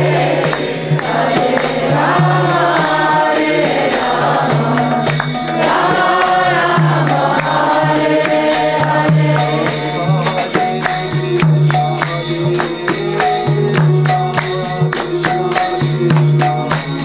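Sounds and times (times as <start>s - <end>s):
group chanting: 0.0s - 10.5s
jingling percussion: 0.0s - 17.0s.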